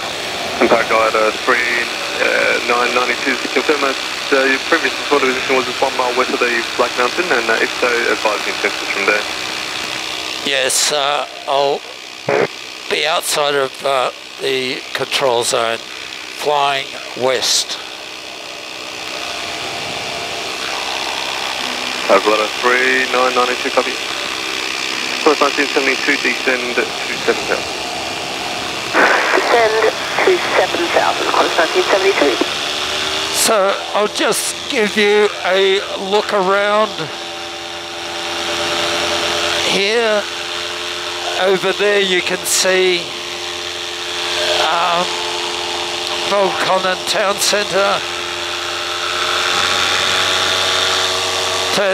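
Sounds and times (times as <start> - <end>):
paramotor engine and propeller: 0.0 - 51.9.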